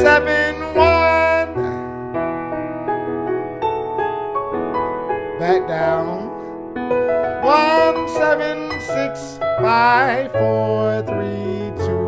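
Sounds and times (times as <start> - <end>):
man singing a note: 0.0 - 1.9, 5.4 - 6.5, 7.4 - 12.0
electric piano chords: 0.0 - 12.0
piano chord: 0.0 - 12.0.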